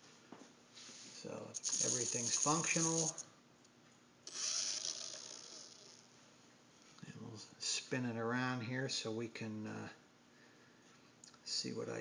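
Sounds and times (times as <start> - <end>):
toy helicopter rotors whirring: 1.6 - 3.2, 4.3 - 6.1.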